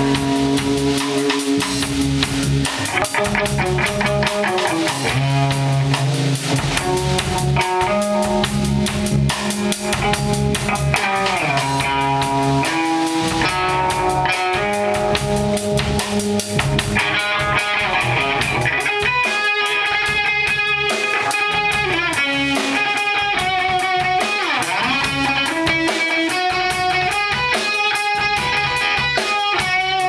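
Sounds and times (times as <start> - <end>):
drum kit hits: 0.0 - 30.0
electric guitars: 0.0 - 30.0.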